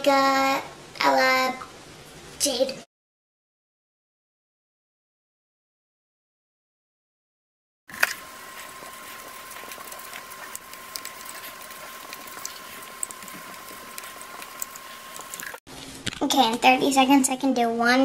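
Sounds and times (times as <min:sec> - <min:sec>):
thin steady whine: 0:07.9 - 0:15.6.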